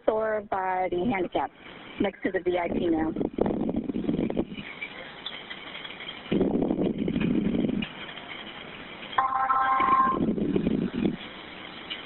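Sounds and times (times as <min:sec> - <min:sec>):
electronic telephone tone: 0:09.2 - 0:10.3
muffled phone noise: 0:09.2 - 0:10.4.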